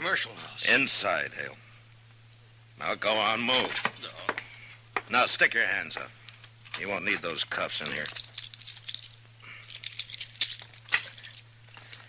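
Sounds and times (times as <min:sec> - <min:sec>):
low recording hum: 0:00.0 - 0:12.0
handcuffs clicking and rattling: 0:07.9 - 0:12.0.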